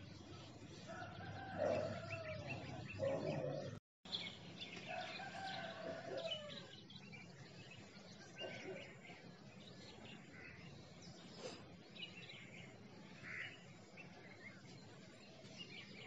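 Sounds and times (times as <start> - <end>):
small birds chirping: 0.0 - 16.0
rooster crowing: 0.9 - 2.8, 4.9 - 6.8.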